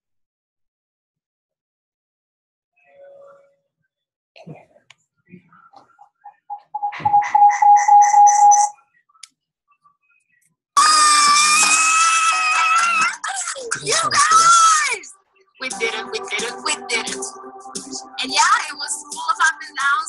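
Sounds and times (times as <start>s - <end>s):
people shrieking with excitement: 10.8s - 13.2s
music: 10.8s - 20.0s.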